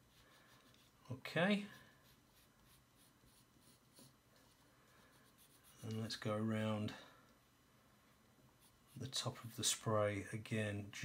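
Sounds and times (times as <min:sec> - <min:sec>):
pencil scratching on paper: 0:00.0 - 0:06.2, 0:08.6 - 0:09.6.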